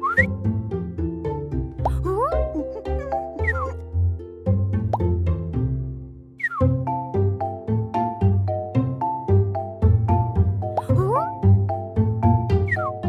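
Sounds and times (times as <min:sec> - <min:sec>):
cartoon sliding whistle: 0:00.0 - 0:00.3, 0:03.4 - 0:03.8, 0:06.4 - 0:06.7, 0:12.7 - 0:13.0
light children's music: 0:00.0 - 0:13.0.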